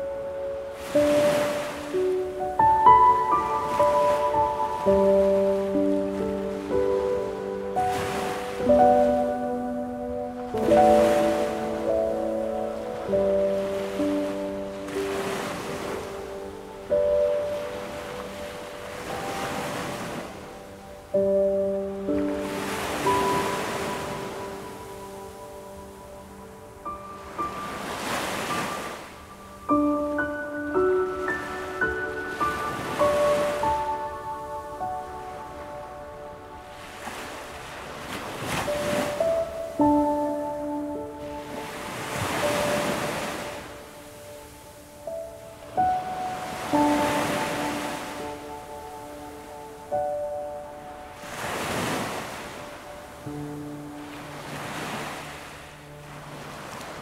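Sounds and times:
ocean surf washing: 0.0s - 57.0s
slow piano music: 0.0s - 57.0s.

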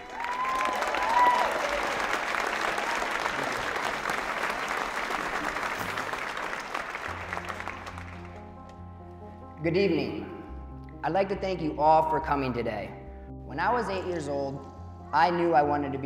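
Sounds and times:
calls from crowd: 0.0s - 4.5s
audience applauding: 0.0s - 8.5s.

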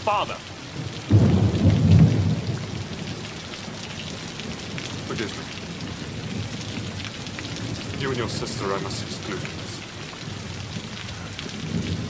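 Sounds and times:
heavy rain falling: 0.0s - 12.0s.

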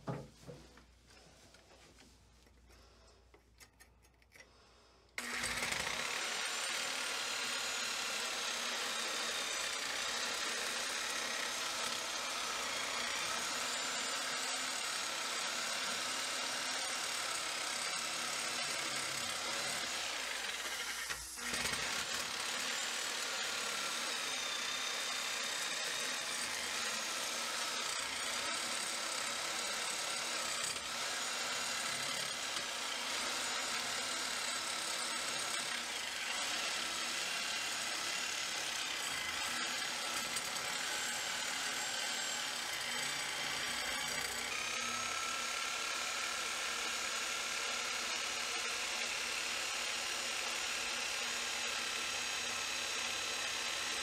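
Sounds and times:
reciprocating saw cutting wood: 5.2s - 54.0s.

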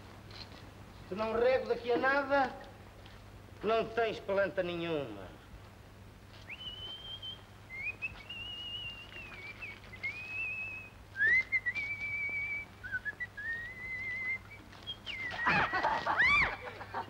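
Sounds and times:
steady low hum: 0.0s - 17.0s
man whistling a slow tune: 6.5s - 15.7s.

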